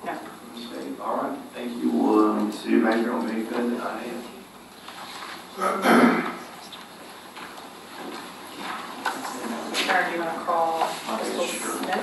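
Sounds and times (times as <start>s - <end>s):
shuffling: 6.3s - 12.0s.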